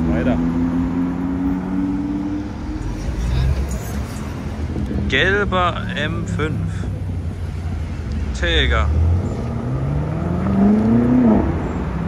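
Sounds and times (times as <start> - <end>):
car engine pulling away: 0.1 - 12.0.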